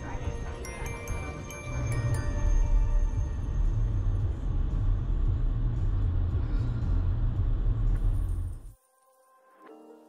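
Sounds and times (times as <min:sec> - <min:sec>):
car cabin road rumble: 0:03.4 - 0:08.6.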